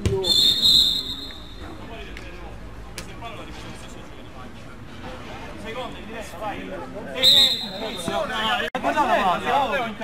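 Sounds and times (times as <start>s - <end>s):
players calling: 0.0s - 2.2s, 7.2s - 8.7s
referee whistle blast: 0.2s - 1.7s, 7.2s - 8.2s.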